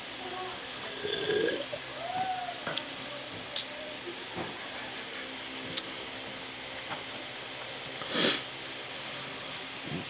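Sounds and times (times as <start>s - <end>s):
room hiss: 7.3s - 9.8s.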